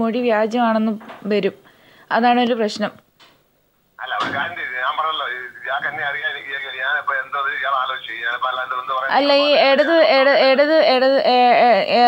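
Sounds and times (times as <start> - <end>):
person speaking over telephone: 4.0 - 10.3.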